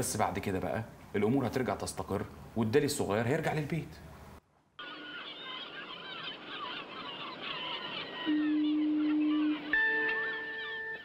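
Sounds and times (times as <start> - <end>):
steady background hiss: 0.0 - 11.0
birds chirping: 4.8 - 11.0
sustained music notes: 8.1 - 11.0.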